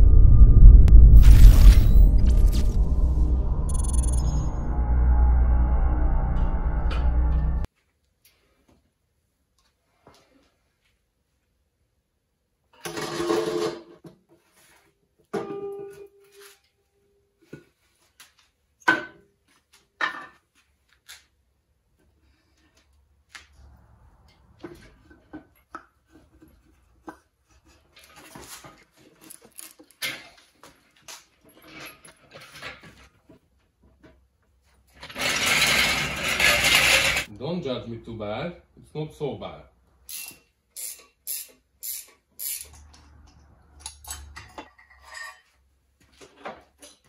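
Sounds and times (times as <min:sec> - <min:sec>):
metal engine parts clanking: 0:35.0 - 0:37.3.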